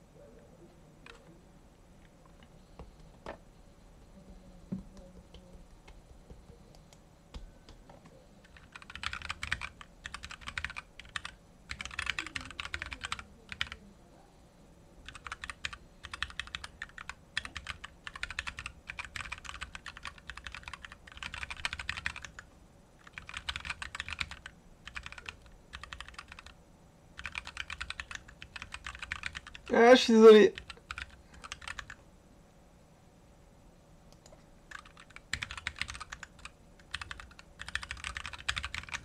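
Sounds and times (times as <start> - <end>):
keyboard typing: 1.0 - 1.3, 5.0 - 13.8, 15.0 - 26.6, 27.2 - 32.0, 34.1 - 39.0.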